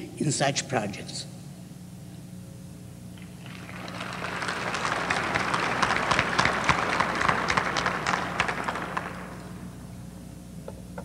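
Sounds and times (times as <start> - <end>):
audience applauding: 3.2 - 9.9.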